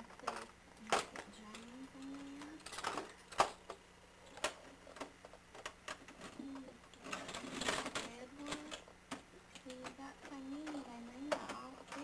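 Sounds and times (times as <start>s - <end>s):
toy trains clattering: 0.1s - 12.0s.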